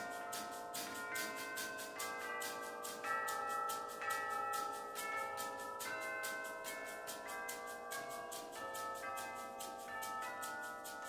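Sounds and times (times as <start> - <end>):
held bell-like notes: 0.0 - 11.0.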